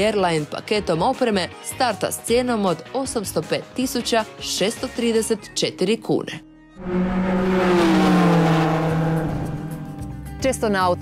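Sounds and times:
car engine note: 6.8 - 10.3.

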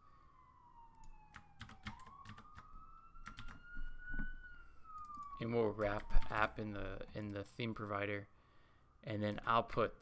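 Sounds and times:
keyboard and mouse clicks: 1.0 - 3.6, 4.9 - 6.4.

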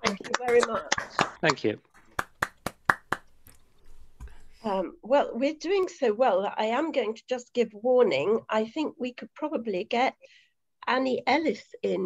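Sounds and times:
hand claps: 0.0 - 3.4.

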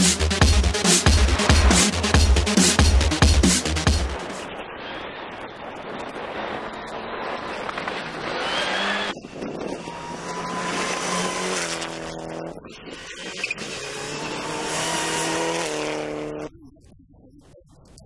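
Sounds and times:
rally car engines revving: 0.0 - 4.3, 6.4 - 16.6
distant car: 0.8 - 16.5.

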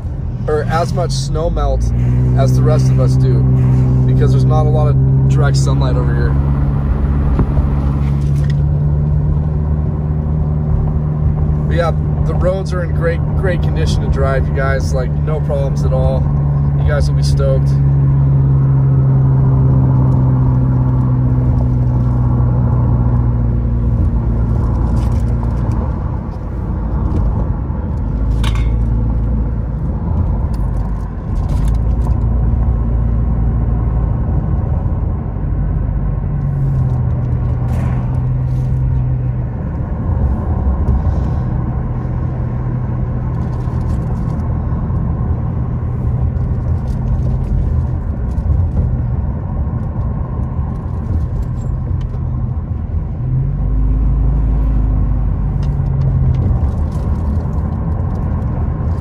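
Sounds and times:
car engine hum: 0.0 - 59.0
road noise inside car: 0.0 - 59.0.

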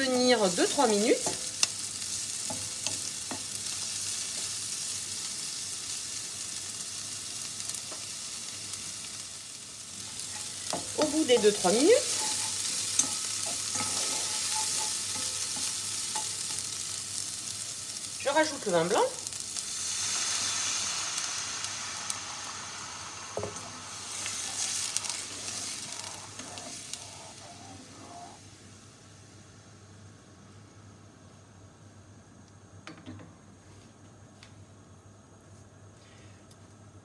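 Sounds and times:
wine sizzling in hot pan: 0.0 - 30.2
wooden spatula stirring: 10.0 - 16.5, 24.5 - 28.3.

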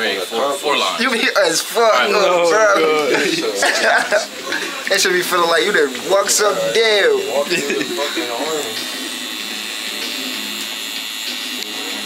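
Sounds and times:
tattoo machine whining: 0.0 - 12.0.

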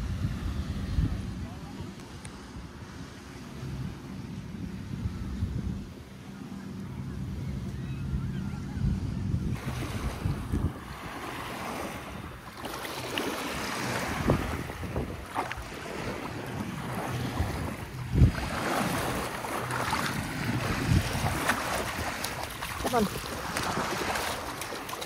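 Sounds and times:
wind buffeting microphone: 0.0 - 6.3, 6.9 - 25.0
ocean surf washing on beach: 9.5 - 25.0.

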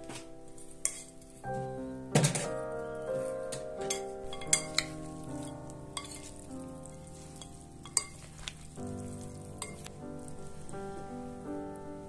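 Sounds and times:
background music with sustained notes: 0.0 - 12.0
metal spoon clinking on glass: 3.8 - 6.4, 7.4 - 8.3, 9.6 - 9.9
grated potato stirred in glass bowl: 4.3 - 10.7.

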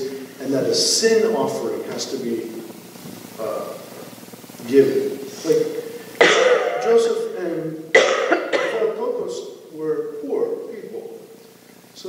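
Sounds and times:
man clearing his throat: 6.2 - 7.0, 8.0 - 9.0
man coughing: 6.2 - 7.0, 8.0 - 9.0.

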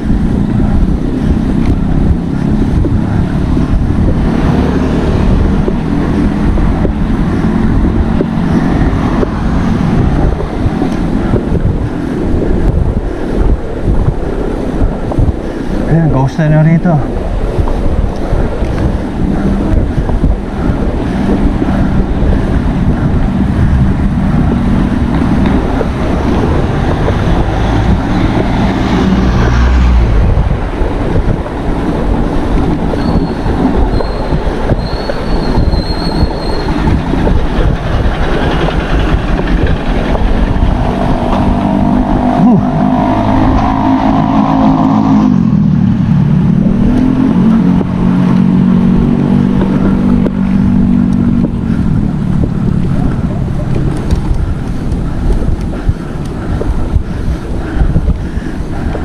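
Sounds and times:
motor vehicle engine hum: 0.0 - 59.0
wind rushing over microphone: 0.0 - 59.0.

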